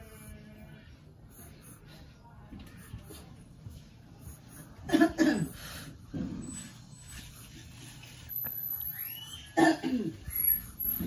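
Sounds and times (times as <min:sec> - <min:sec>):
pencil scratching on paper: 0:00.0 - 0:09.0, 0:10.2 - 0:11.0
person coughing: 0:04.8 - 0:05.6, 0:09.6 - 0:10.2.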